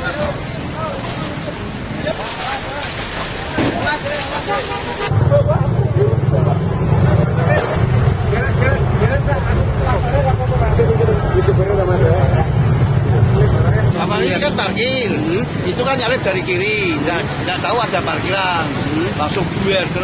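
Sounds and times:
outdoor crowd voices: 0.0s - 20.0s
people talking: 0.0s - 20.0s
truck engine drone: 5.1s - 20.0s.

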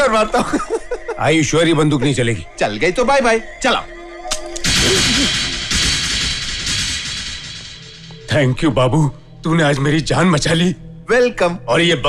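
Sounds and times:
background music: 0.0s - 12.0s
loud ringing crash hit: 4.6s - 8.3s.

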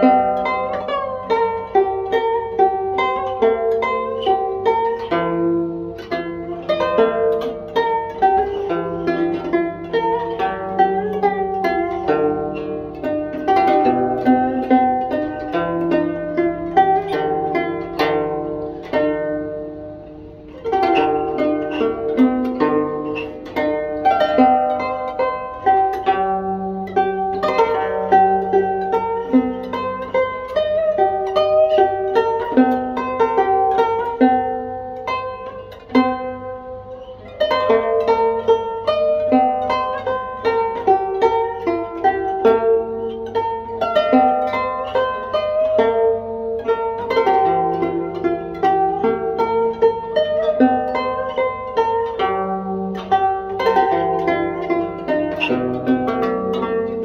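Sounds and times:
plucked zither playing: 0.0s - 57.0s.

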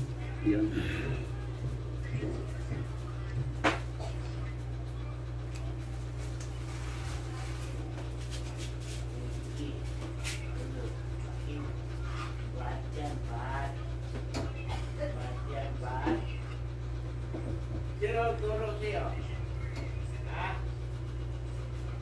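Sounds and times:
low background voices: 0.0s - 18.1s
steady low hum: 0.0s - 22.0s.

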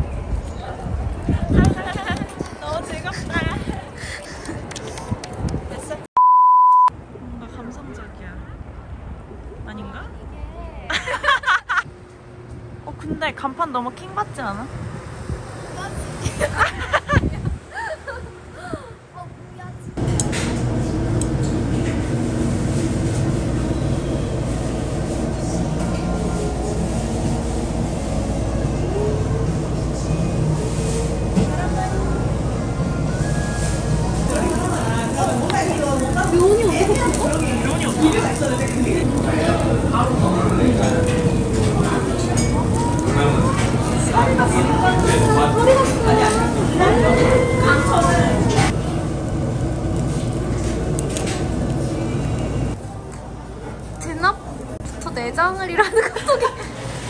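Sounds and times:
ventilation rumble: 0.0s - 6.1s, 7.0s - 57.0s
censor bleep tone: 6.2s - 6.9s
outdoor ambience: 6.9s - 55.3s
indistinct voices: 25.1s - 49.4s.

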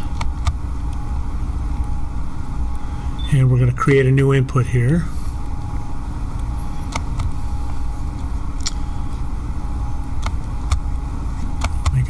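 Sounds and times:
sharp clicks: 0.0s - 1.0s, 10.1s - 11.0s
low room rumble: 0.0s - 12.0s.

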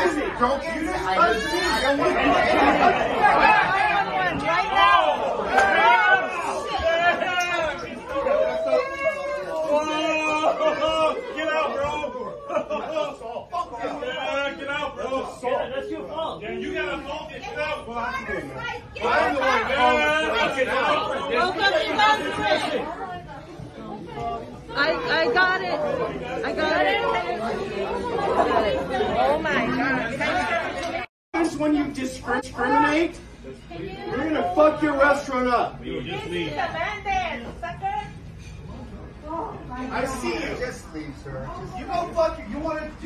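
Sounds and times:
people talking over one another: 0.0s - 33.1s
people arguing: 0.0s - 38.2s.

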